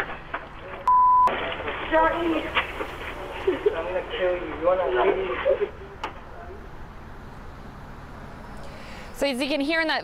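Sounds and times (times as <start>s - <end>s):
low rumble and hiss: 0.0s - 9.2s.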